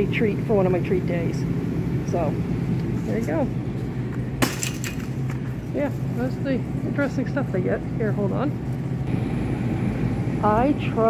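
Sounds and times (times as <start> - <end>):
steady low hum: 0.0 - 11.0
box clattering into wire cart: 4.4 - 5.2.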